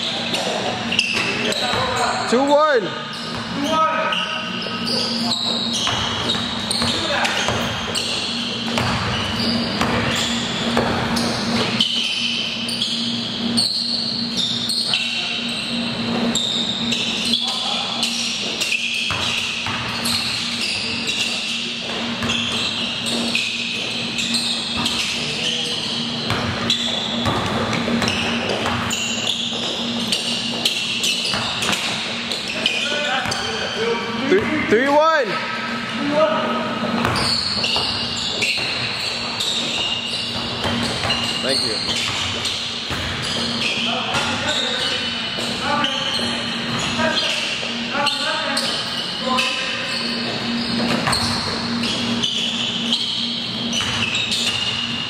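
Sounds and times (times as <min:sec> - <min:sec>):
loud high squeal: 0:00.0 - 0:27.3, 0:37.1 - 0:55.0
sneakers squeaking: 0:00.0 - 0:55.0
steady low hum: 0:04.5 - 0:32.8
basketball dribbled on hard court: 0:04.9 - 0:12.3, 0:18.1 - 0:25.2, 0:26.2 - 0:33.6, 0:37.0 - 0:47.8, 0:50.2 - 0:55.0
players shouting and chatter: 0:32.0 - 0:38.3.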